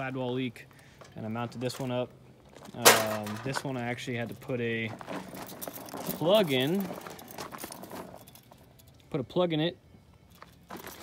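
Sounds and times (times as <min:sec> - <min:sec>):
tire handled on gravel: 0:00.0 - 0:08.6, 0:10.3 - 0:11.0.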